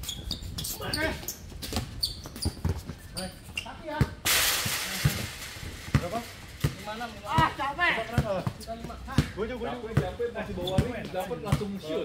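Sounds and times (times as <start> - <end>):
clattering crash: 4.3 - 7.3
basketball bouncing on court: 5.9 - 11.7.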